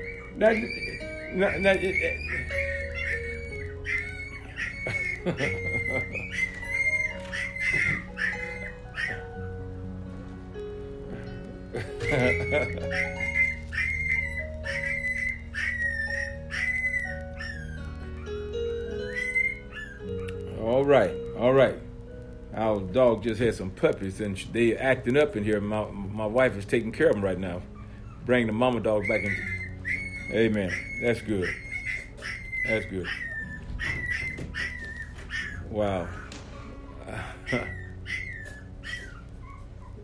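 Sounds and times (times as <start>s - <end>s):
puppies whining and crying: 0.0s - 23.2s, 24.6s - 40.0s.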